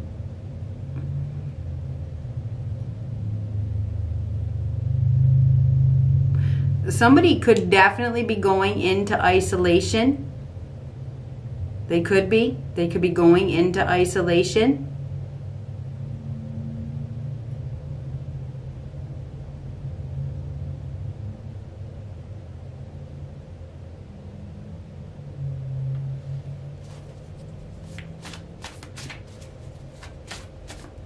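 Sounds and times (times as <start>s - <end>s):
steady low rumble: 0.0s - 31.0s
cards shuffling: 26.8s - 31.0s.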